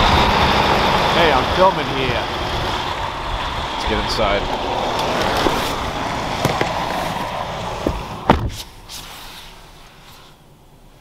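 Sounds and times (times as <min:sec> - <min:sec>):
outside background noise: 0:00.0 - 0:11.0
car door shutting thud: 0:07.8 - 0:08.8.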